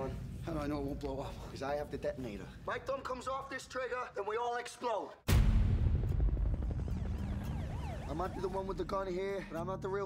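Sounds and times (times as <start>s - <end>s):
faint siren wailing: 6.6s - 9.4s.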